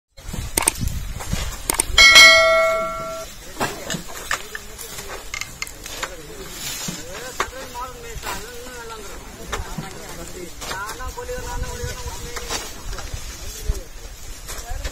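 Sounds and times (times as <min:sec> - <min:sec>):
bright bell ding: 0:02.0 - 0:03.3.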